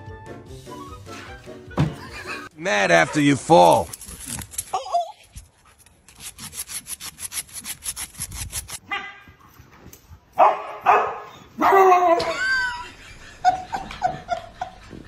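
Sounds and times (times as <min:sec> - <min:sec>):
fast scratching: 0:03.5 - 0:08.8
dog barking and yelping: 0:10.4 - 0:12.3.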